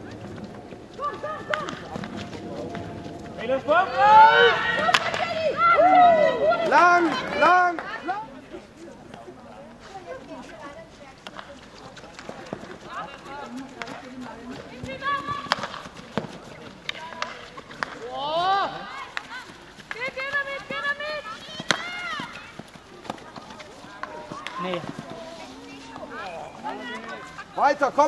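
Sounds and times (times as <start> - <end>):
players shouting: 0.0 - 8.2
hockey sticks striking ball: 4.6 - 5.5, 14.8 - 18.1, 19.9 - 22.3, 23.0 - 26.1.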